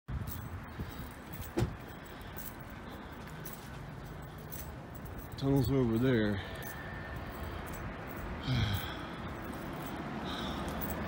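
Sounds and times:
outdoor background noise: 0.1s - 11.0s.

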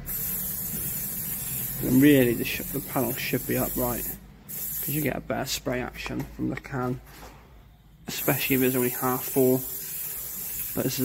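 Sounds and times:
spray can hissing: 0.0s - 5.1s, 8.1s - 11.0s.

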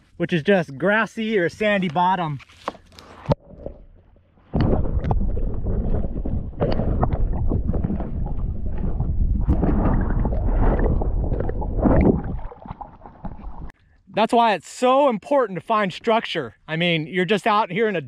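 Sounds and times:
underwater rushing and gurgling: 3.3s - 13.8s.

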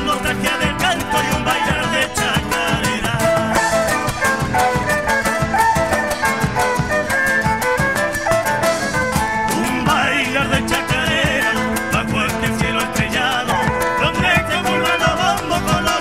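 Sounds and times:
folk band playing: 0.0s - 16.0s.

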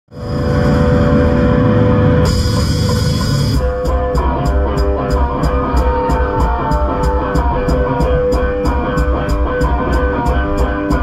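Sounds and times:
cymbal wash: 0.1s - 5.6s
ringing guitar chord: 0.1s - 8.6s
drum kit beat: 0.1s - 11.0s.

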